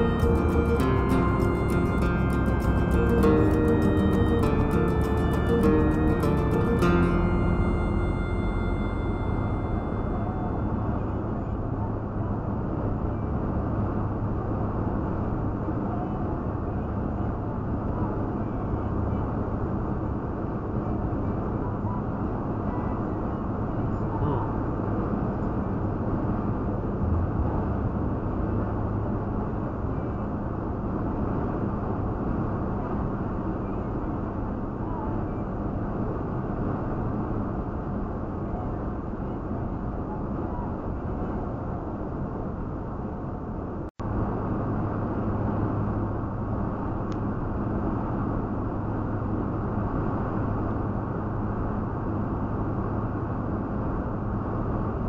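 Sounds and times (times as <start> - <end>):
road and engine noise in cab: 0.0 - 55.0.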